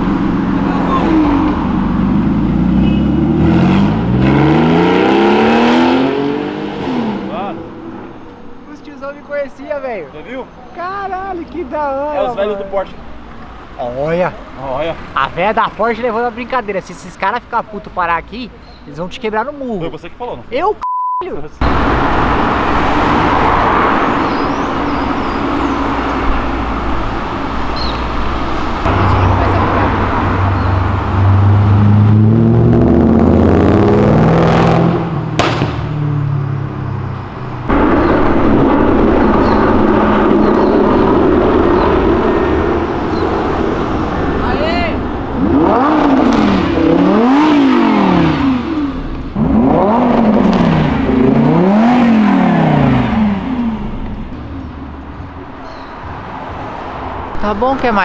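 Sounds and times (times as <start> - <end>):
sports car engine revving: 0.0 - 8.2, 21.6 - 55.8.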